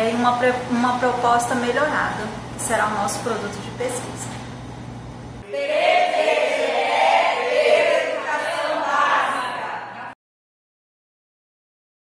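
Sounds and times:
crowd chanting in unison: 5.4 - 10.2.

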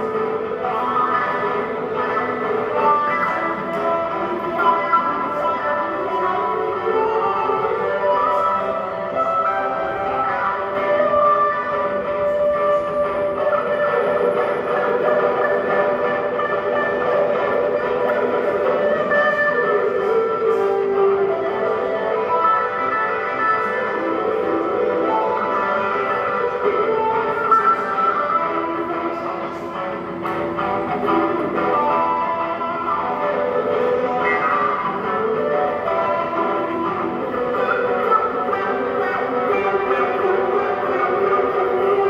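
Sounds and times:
electric guitar through amp: 0.0 - 42.0
looped guitar phrases: 0.0 - 42.0.

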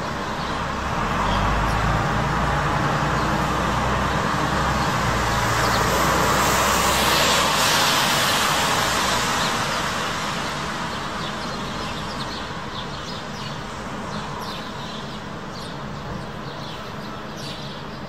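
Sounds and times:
vehicle engine rumble and tyre noise: 0.0 - 18.0.

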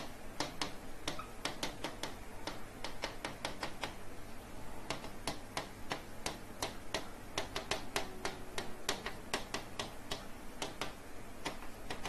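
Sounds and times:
pen tapping on glass screen: 0.0 - 4.0, 4.9 - 12.0.

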